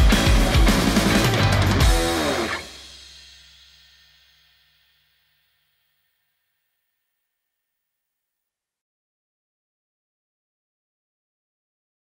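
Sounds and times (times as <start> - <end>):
rock music ringing note: 0.0 - 6.0
cymbal shimmer: 0.0 - 6.9.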